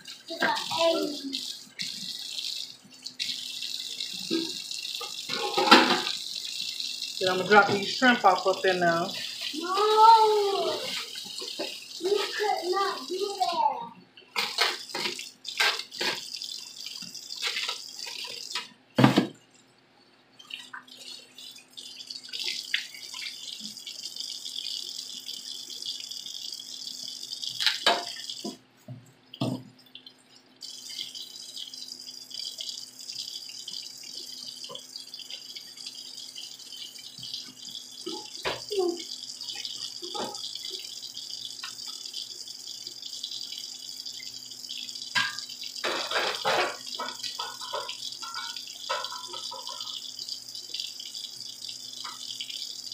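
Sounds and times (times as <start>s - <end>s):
water boiling in a pot: 0.0s - 19.5s, 20.3s - 52.9s.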